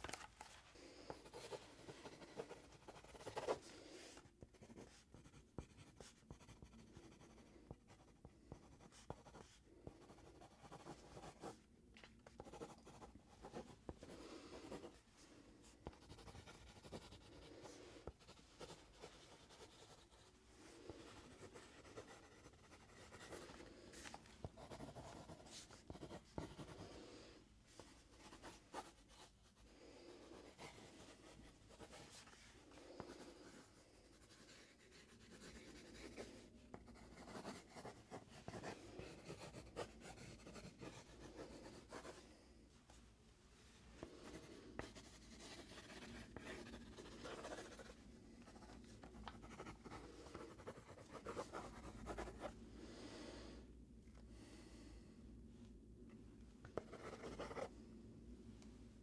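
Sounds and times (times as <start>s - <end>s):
pencil scratching on paper: 1.0s - 11.6s, 12.4s - 15.0s, 15.8s - 27.0s, 30.3s - 42.2s, 44.2s - 52.5s, 56.8s - 57.7s.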